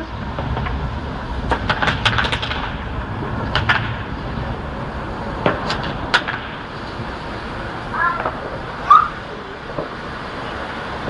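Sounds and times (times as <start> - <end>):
fireworks and firecrackers banging: 0.0 - 11.0
low background rumble: 0.0 - 11.0.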